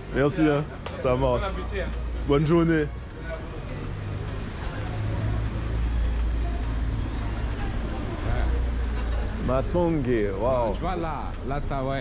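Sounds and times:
faint voices of passers-by: 0.0s - 12.0s
road traffic rumble: 0.0s - 12.0s.

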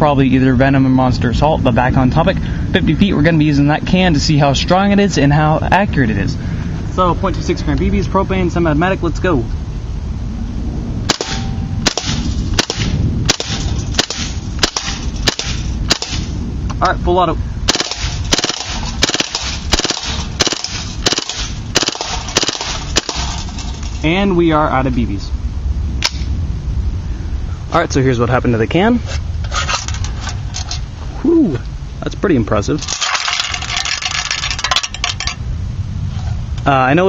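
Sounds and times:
airsoft gun shots: 11.1s - 16.4s, 17.7s - 23.4s.

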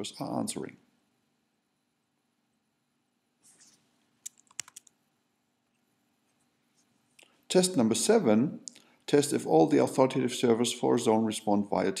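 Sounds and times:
computer keyboard keystrokes: 4.2s - 4.9s.

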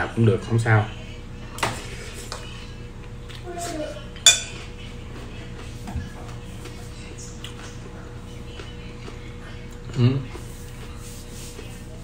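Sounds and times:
utensil clinking on ceramic plate: 4.3s - 4.6s.

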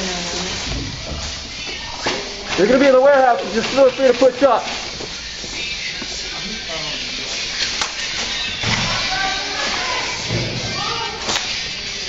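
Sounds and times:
steady background din: 0.0s - 12.0s
voices calling out: 5.6s - 12.0s.

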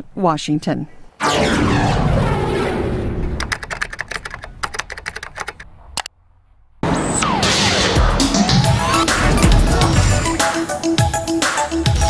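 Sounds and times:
keyboard key clicks: 3.4s - 6.1s.

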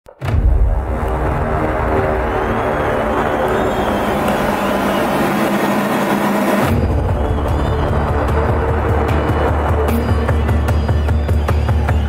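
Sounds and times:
electronic music with heavy beat: 0.2s - 12.0s.

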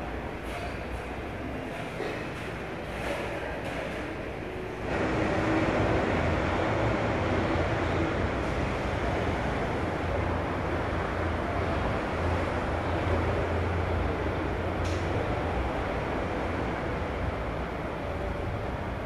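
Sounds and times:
ventilation hum and hiss: 0.0s - 19.0s.

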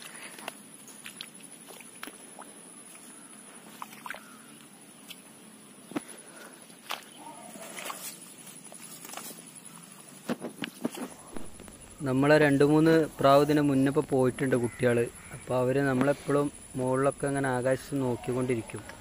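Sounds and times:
faint high steady whine: 0.0s - 19.0s.

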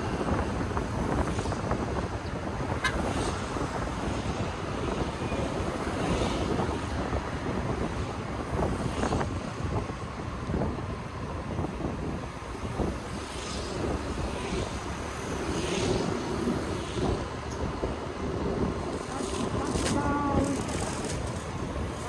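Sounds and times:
scooter engine and road noise: 0.0s - 22.0s
traffic passing: 0.0s - 22.0s
wind buffeting microphone: 0.0s - 22.0s.

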